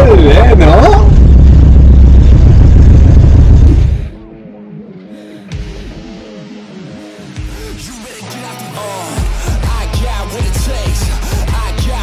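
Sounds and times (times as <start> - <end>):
car engine and road noise: 0.0 - 4.1.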